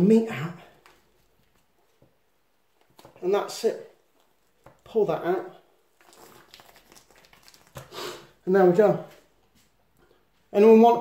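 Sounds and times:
skin and fur crackling and rustling: 0:00.7 - 0:08.0.

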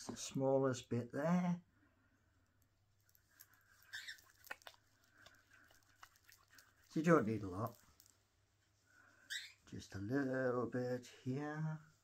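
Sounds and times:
oily palms rubbing together: 0:02.9 - 0:12.0.

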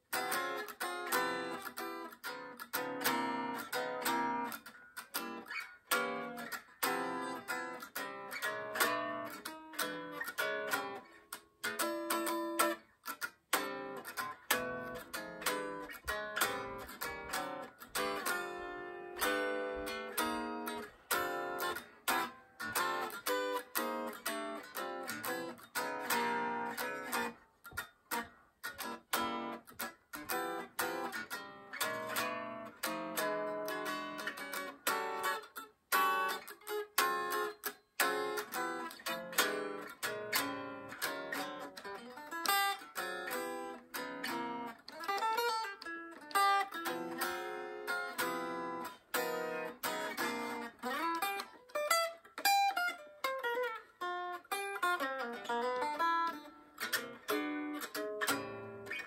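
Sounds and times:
electric guitar clipped chords: 0:00.1 - 0:59.0.

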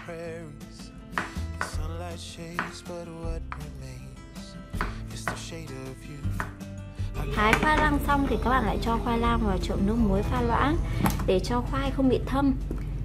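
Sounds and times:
background music: 0:00.0 - 0:13.0
knife knocking on wooden board: 0:07.5 - 0:08.0.

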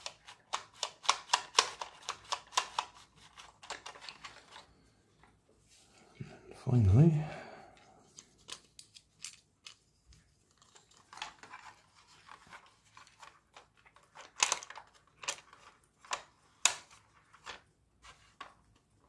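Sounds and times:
plastic parts clicking and scraping: 0:00.0 - 0:05.4, 0:08.1 - 0:19.0.

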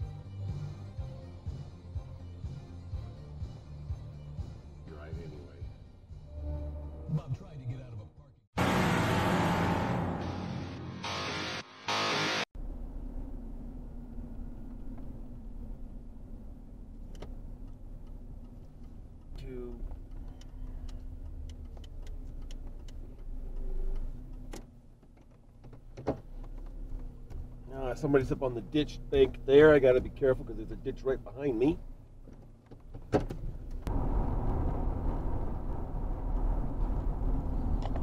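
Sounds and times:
loud music: 0:10.2 - 0:12.4
car cabin road rumble: 0:12.6 - 0:38.0
faint clicks: 0:17.0 - 0:25.8.

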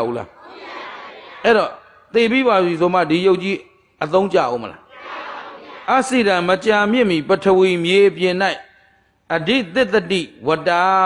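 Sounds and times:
man preaching: 0:00.0 - 0:00.4, 0:01.4 - 0:04.9, 0:05.9 - 0:11.0.

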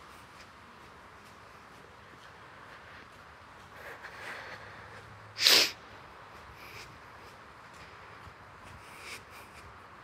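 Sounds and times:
person sneezing: 0:05.4 - 0:05.8.

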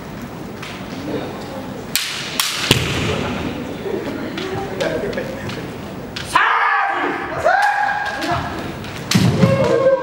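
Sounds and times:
long drawn-out shouts: 0:06.3 - 0:08.5.

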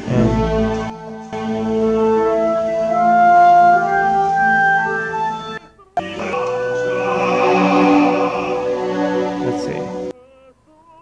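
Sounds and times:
orchestral woodwind melody: 0:00.0 - 0:10.1.

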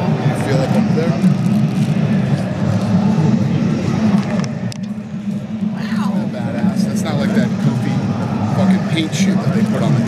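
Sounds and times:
murmured talk: 0:00.0 - 0:10.0
steady low rumble: 0:00.0 - 0:10.0.

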